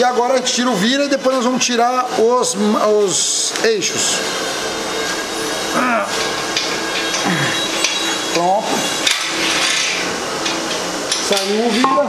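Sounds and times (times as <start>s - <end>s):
metal scraping and rubbing: 4.0s - 12.0s.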